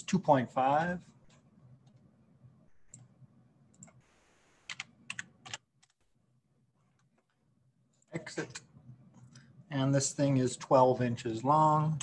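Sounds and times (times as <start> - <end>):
computer mouse clicks: 2.7 - 3.1, 3.7 - 4.0, 4.7 - 6.0.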